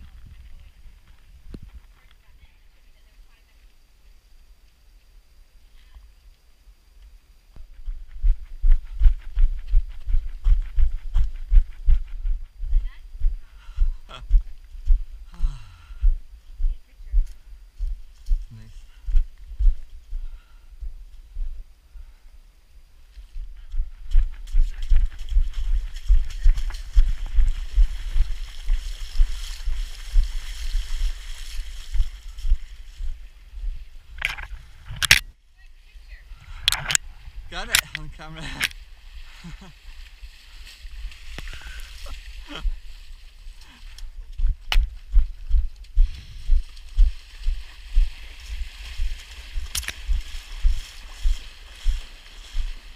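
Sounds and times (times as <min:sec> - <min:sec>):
running footsteps on a trail: 0:00.0 - 0:02.4, 0:07.6 - 0:21.6, 0:23.1 - 0:34.8, 0:37.7 - 0:52.9
feet splashing through water: 0:24.4 - 0:33.2, 0:46.4 - 0:52.9.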